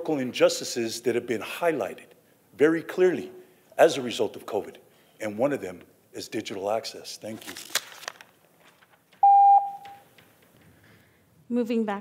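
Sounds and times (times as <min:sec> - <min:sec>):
electronic timer beep: 0:09.2 - 0:10.0.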